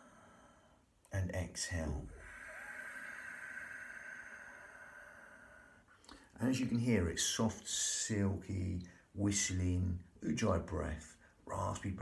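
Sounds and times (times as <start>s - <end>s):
raspy whistling exhale: 2.1s - 5.9s.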